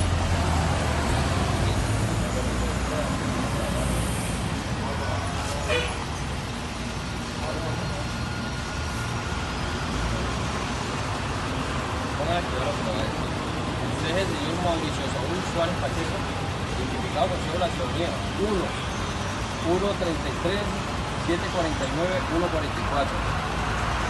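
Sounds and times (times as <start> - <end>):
road traffic engine rumble: 0.0 - 24.0.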